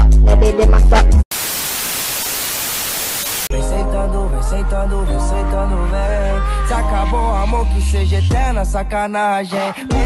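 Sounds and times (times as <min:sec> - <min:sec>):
music: 0:00.0 - 0:01.2, 0:03.5 - 0:10.0
white-noise static hiss: 0:01.3 - 0:03.5.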